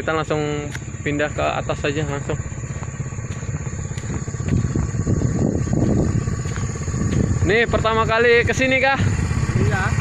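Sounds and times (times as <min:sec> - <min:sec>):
small motorcycle engine running: 0:00.0 - 0:10.0.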